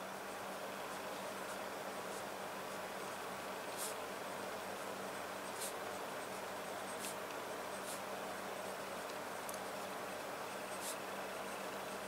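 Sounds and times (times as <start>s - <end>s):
low hiss and hum: 0.0s - 12.0s
pen scratching on paper: 5.1s - 8.8s, 10.5s - 12.0s.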